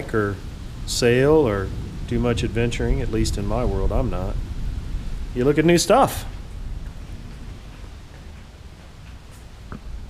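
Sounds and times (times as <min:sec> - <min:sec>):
low rumble: 0:00.0 - 0:08.8
heavy rain hiss: 0:00.0 - 0:10.0.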